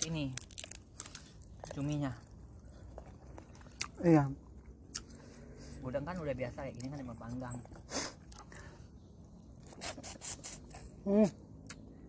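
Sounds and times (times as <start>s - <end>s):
mouth smacking and sucking: 9.6s - 10.9s.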